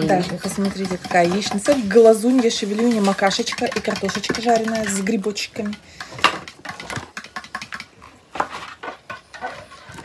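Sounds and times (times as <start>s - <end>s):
fork clicking and scraping on plate: 0.1s - 7.9s.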